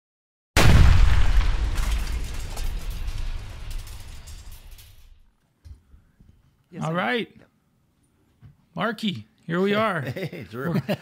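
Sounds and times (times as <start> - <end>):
deep boom impact: 0.6 - 5.2.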